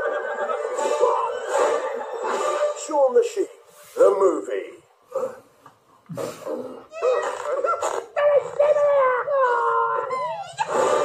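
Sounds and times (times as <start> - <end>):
cartoon dog howling: 6.9 - 11.0.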